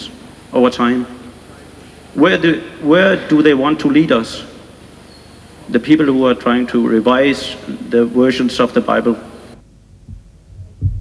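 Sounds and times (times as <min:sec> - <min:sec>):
microphone handling thuds: 0:09.6 - 0:11.0.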